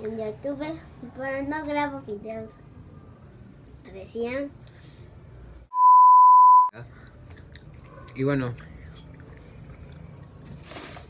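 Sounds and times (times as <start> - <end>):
high censor beep: 5.7 - 6.7.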